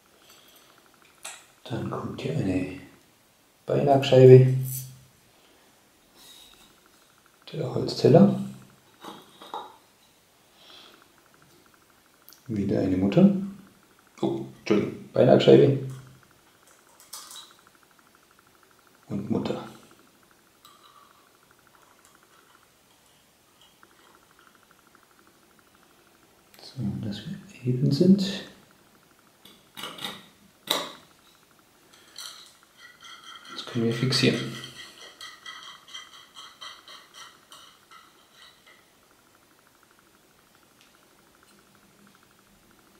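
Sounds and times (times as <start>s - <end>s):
light metallic clinks and knocks: 15.9s - 17.8s, 29.4s - 39.0s.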